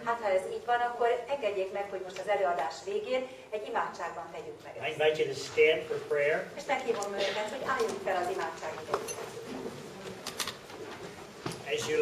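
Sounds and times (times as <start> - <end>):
faint shuffling: 5.2 - 12.0.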